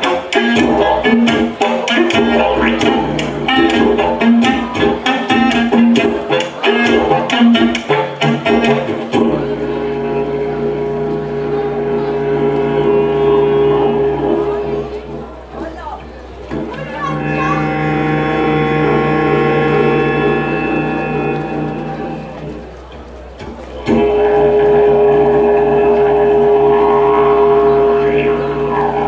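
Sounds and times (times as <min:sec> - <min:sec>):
clarinet: 0:00.0 - 0:15.7, 0:16.5 - 0:22.7, 0:23.4 - 0:29.0
didgeridoo: 0:00.0 - 0:29.0.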